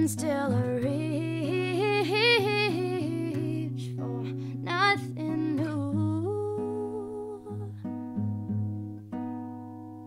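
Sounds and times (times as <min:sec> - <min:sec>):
person singing wordlessly: 0:00.0 - 0:07.7
acoustic guitar: 0:00.0 - 0:10.0.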